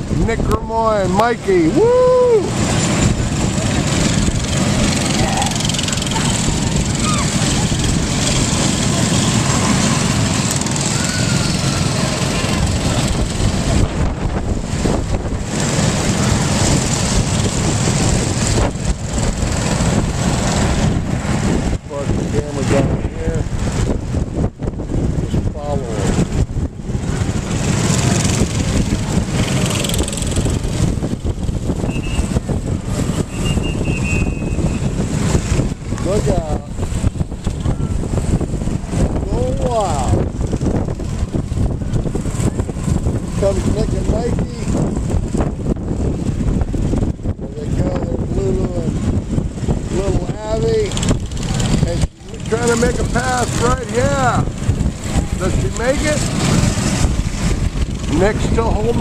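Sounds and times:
go-kart engines droning: 0.0 - 59.0.

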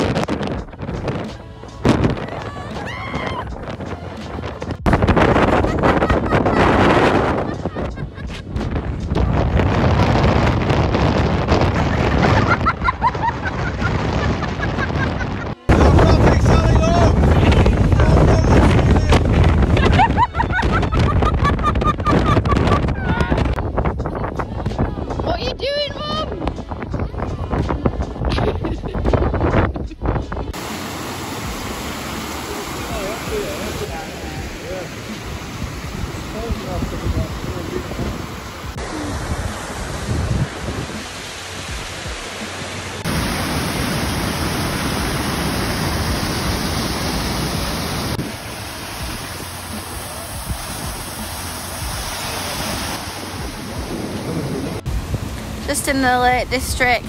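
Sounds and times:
wind buffeting microphone: 0.0 - 57.0
stream rushing over small falls: 30.5 - 57.0.

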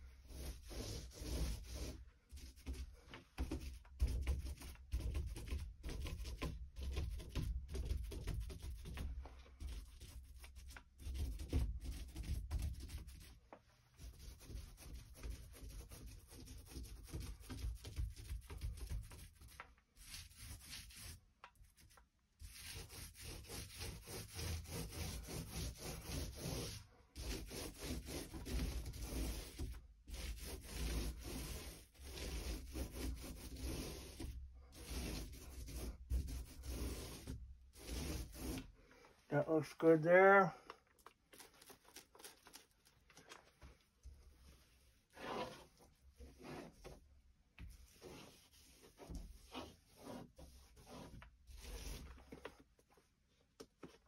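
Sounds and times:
paint brush stroking: 0.2 - 6.1, 18.2 - 40.4, 41.0 - 47.0, 47.6 - 52.7
paint roller rubbing on door: 0.3 - 13.4, 14.0 - 38.8, 44.4 - 47.0, 47.6 - 52.6.

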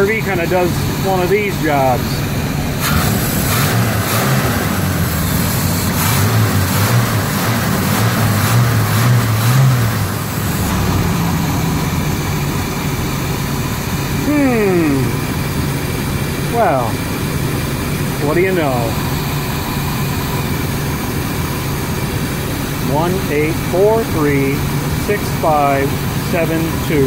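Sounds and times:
engine revving and idling: 0.0 - 27.0.

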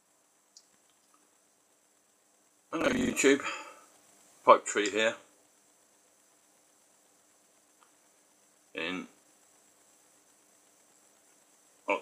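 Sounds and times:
faint steady hum: 0.0 - 12.0
man's voice: 2.8 - 3.7.

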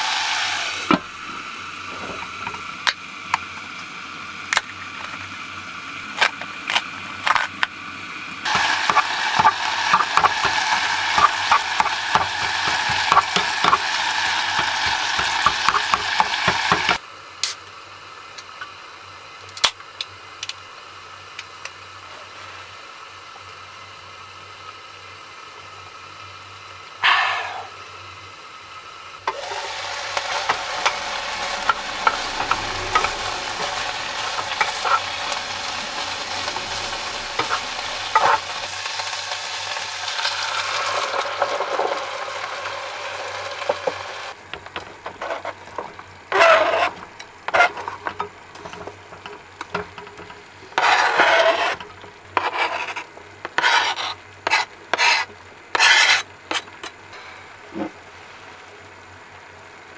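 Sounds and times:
bacon sizzling in a pot: 0.0 - 27.0, 28.0 - 57.2
utensil scraping a pot: 8.5 - 17.0, 29.5 - 38.8, 44.6 - 56.7.

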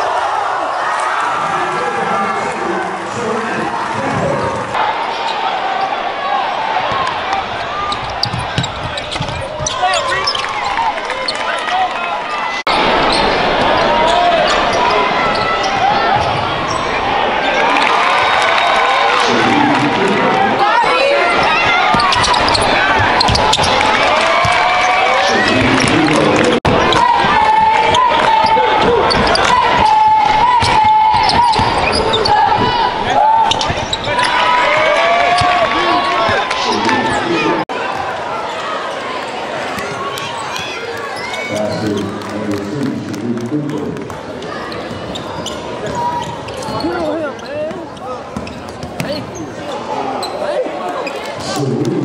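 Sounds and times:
crowd voices echoing: 0.0 - 52.0
sneakers squeaking: 6.8 - 11.6, 12.7 - 18.0, 21.3 - 42.4, 44.1 - 51.6
basketball bouncing on gym court: 7.9 - 10.4.

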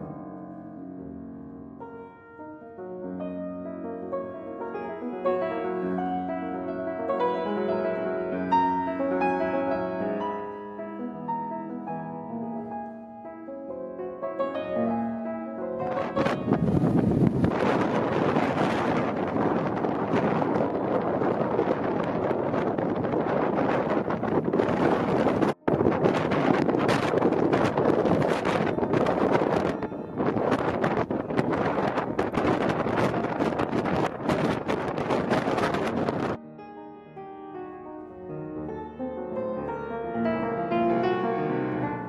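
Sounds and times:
piano music: 0.0 - 42.0
wind buffeting microphone: 15.8 - 36.4.

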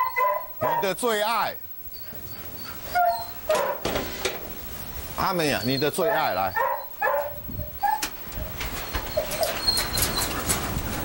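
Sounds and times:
dog whimpering: 0.0 - 0.9, 1.9 - 3.8, 5.6 - 10.4
dog yipping: 0.0 - 0.9, 2.0 - 3.8, 6.0 - 10.4.

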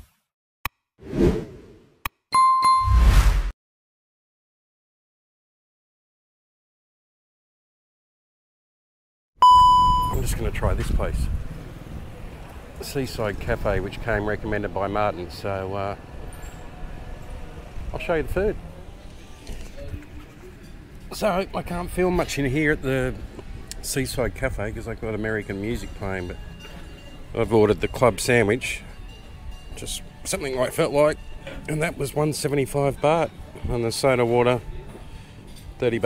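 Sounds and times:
rising whoosh: 1.0 - 1.8, 2.8 - 3.5
bell-like dings: 2.4 - 3.0, 25.3 - 30.9.

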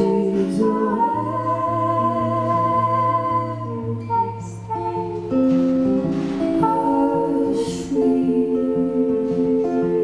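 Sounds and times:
woman singing: 0.0 - 5.4, 6.5 - 10.0
acoustic guitar: 0.0 - 10.0.

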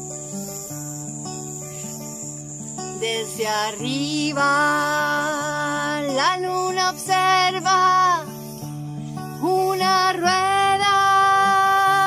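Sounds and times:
strummed acoustic guitar: 0.0 - 12.0
woman singing: 2.9 - 8.4, 9.3 - 12.0.

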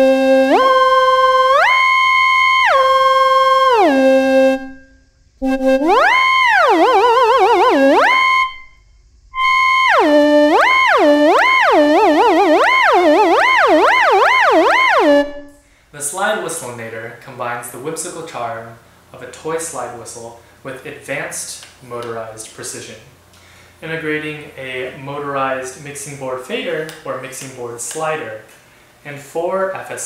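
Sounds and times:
digital slide whistle: 0.0 - 8.8, 9.4 - 15.5.

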